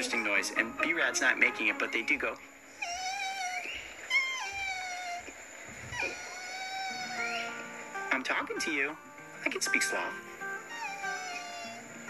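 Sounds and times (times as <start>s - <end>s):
background music: 0.0s - 2.7s, 6.7s - 12.0s
man making squeaky cries: 2.8s - 7.6s, 10.6s - 11.9s.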